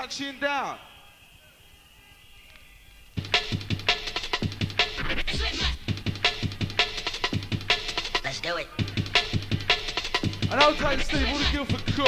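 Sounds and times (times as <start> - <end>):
hardcore rave music: 3.0 - 12.0
heavy kick drum: 3.2 - 8.0, 8.8 - 12.0.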